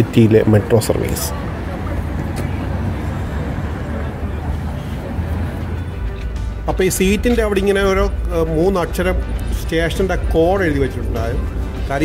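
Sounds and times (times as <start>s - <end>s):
low rumble of traffic: 0.0s - 12.0s.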